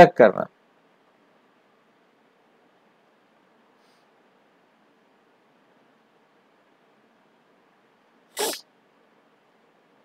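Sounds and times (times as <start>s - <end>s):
man sniffing: 8.4s - 8.6s.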